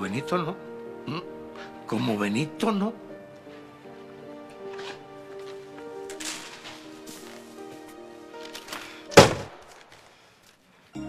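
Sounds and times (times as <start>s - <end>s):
background music with held notes: 0.0s - 9.8s
door slamming: 9.1s - 9.7s.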